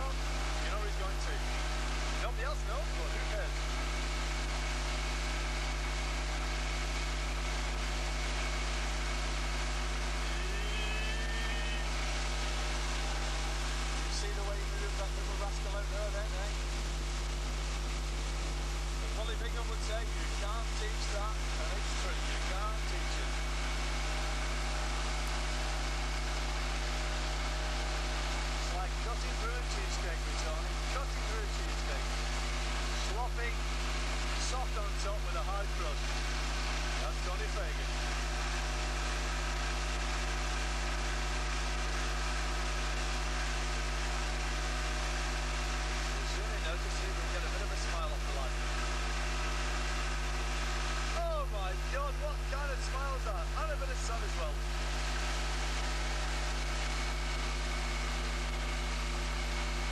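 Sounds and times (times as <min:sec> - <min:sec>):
outboard motor running: 0:00.0 - 0:59.9.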